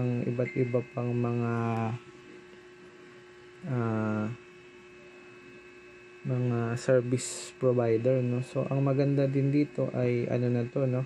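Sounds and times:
electrical hum with hiss: 0.0 - 11.0.

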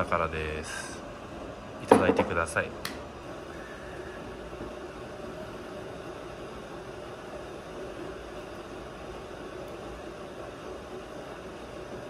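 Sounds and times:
background hum with hiss: 0.0 - 12.0.

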